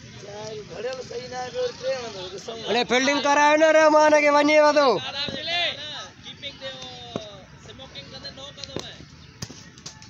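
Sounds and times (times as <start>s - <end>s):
cricket bat striking ball: 5.2s - 5.5s.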